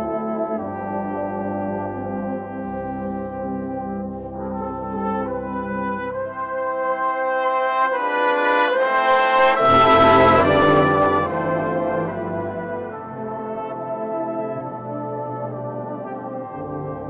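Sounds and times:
brass band playing a hymn: 0:00.0 - 0:17.0.

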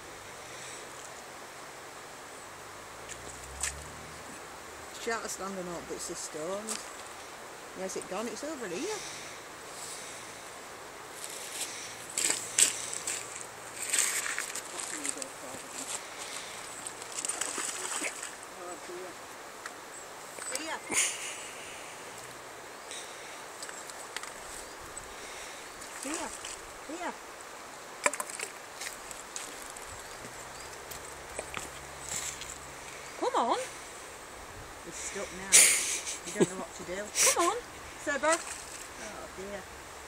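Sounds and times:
river rushing: 0:00.0 - 0:40.0
splashes and knocks among stones: 0:16.9 - 0:18.4.

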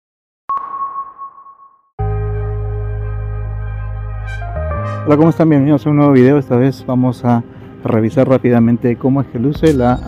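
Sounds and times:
high ping tone: 0:00.5 - 0:03.0.

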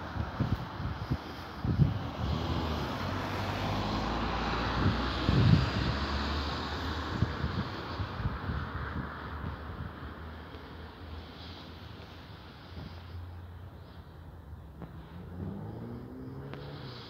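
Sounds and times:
vehicle passing by: 0:00.4 - 0:10.5, 0:11.2 - 0:17.0.

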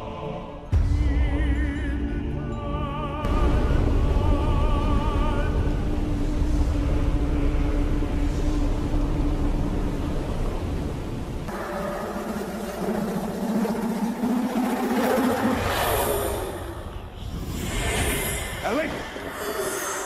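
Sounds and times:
low sustained drone: 0:02.3 - 0:20.0
deep rumble: 0:03.1 - 0:20.0.

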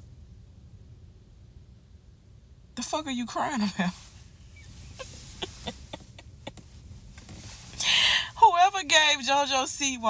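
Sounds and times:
car cabin rumble: 0:02.8 - 0:09.3
woman's stifled laughter: 0:05.0 - 0:06.7
loud breath out: 0:07.8 - 0:08.3.

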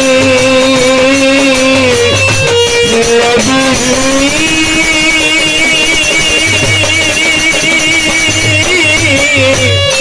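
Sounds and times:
harmonium melody: 0:00.0 - 0:10.0
wavering high tone: 0:00.5 - 0:09.6.

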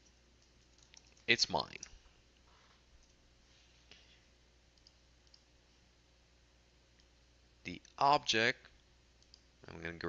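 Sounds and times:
computer mouse clicks: 0:00.4 - 0:01.9, 0:04.8 - 0:05.5.

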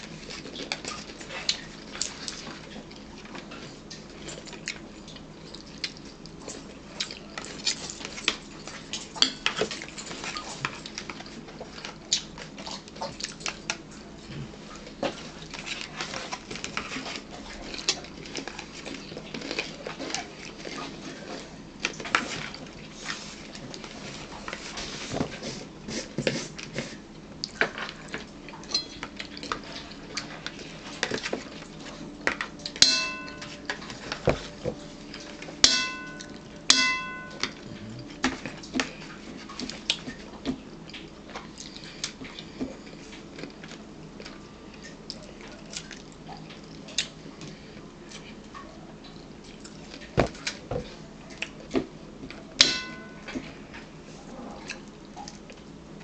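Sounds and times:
short high ringing tones: 0:32.8 - 0:33.6, 0:35.7 - 0:37.6.

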